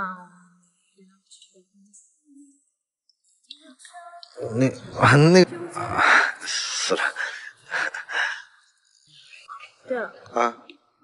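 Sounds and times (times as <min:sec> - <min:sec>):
breathy puffs of breath: 0:07.2 - 0:08.6.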